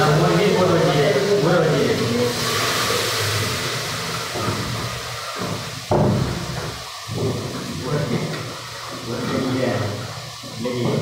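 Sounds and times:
food frying in pan: 0.0s - 11.0s
gas burner hissing: 0.0s - 11.0s.

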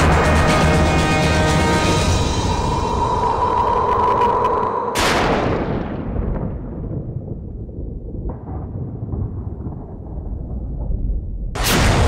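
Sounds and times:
dramatic boom with rumbling decay: 5.0s - 12.0s.

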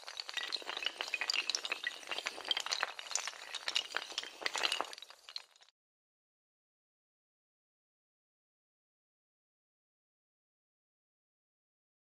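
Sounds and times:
tiles toppling like dominoes: 0.0s - 5.7s.

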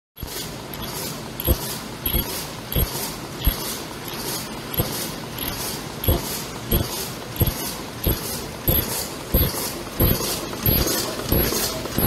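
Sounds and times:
machine mechanical hiss: 0.2s - 12.0s
machine thumping: 0.2s - 12.0s.

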